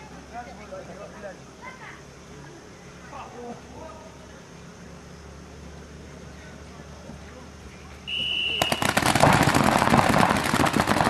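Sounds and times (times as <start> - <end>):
high-pitched start signal: 8.1 - 9.0
paintball markers firing rapidly: 8.5 - 11.0.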